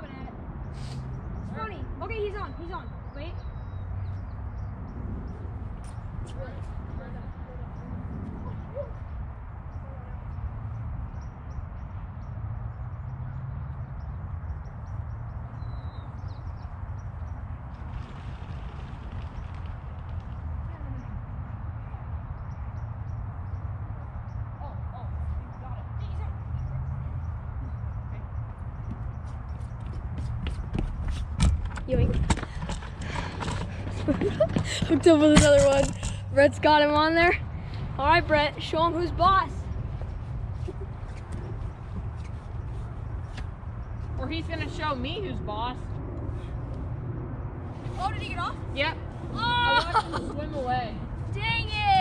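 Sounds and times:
wind buffeting microphone: 0:00.0 - 0:52.0.

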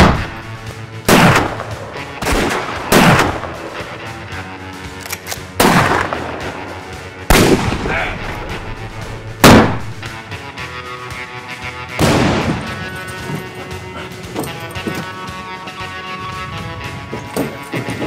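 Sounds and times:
gunshots with echo: 0:00.0 - 0:04.0, 0:05.6 - 0:10.2, 0:12.0 - 0:12.9.

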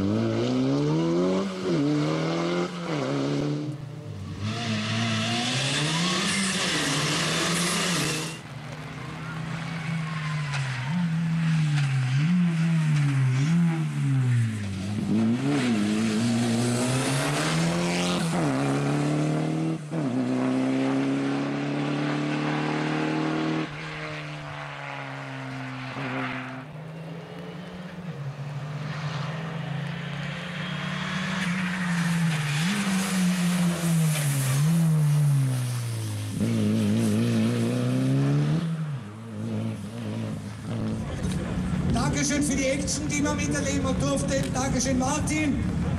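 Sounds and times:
car engine revving past: 0:00.0 - 0:42.7.

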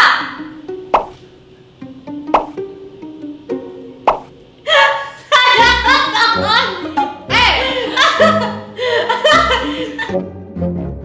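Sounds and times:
bright swooping tones: 0:00.0 - 0:07.1
plucked plop: 0:00.9 - 0:01.2, 0:02.2 - 0:02.6, 0:04.1 - 0:04.3.

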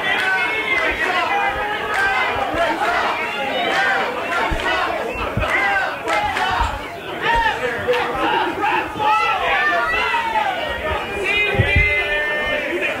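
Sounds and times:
crowd shouting and cheering: 0:00.0 - 0:13.0
dull low thuds: 0:00.0 - 0:13.0.

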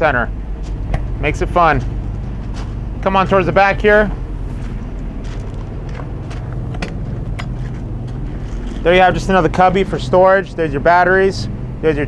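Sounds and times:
generator humming: 0:00.0 - 0:12.0.

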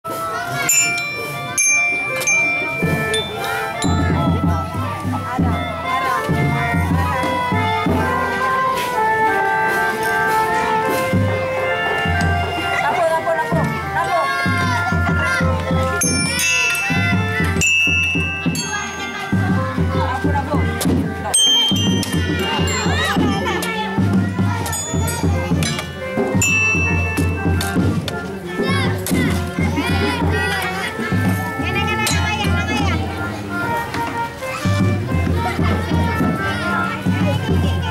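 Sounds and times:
children calling out: 0:00.1 - 0:37.9
organ-like melody: 0:00.1 - 0:37.9
low drum beats: 0:02.0 - 0:37.9.

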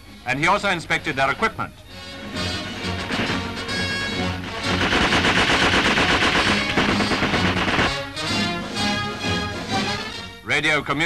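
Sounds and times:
background music: 0:00.0 - 0:11.0
machine gun firing rapidly: 0:04.4 - 0:08.1.

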